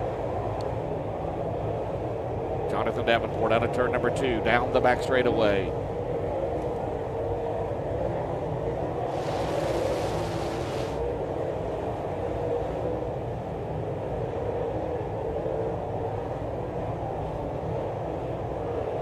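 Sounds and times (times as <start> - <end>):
bright hiss: 9.1 - 11.0.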